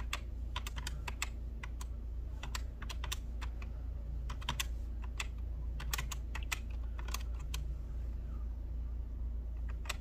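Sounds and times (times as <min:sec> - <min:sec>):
calculator keys clicking: 0:00.0 - 0:07.6
steady low hum: 0:00.0 - 0:10.0.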